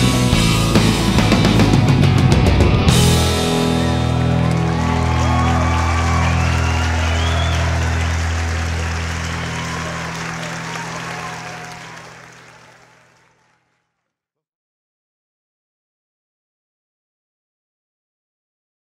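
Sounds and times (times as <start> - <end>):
rock band chord ringing: 0.0 - 11.7
audience applauding and cheering: 3.2 - 13.8.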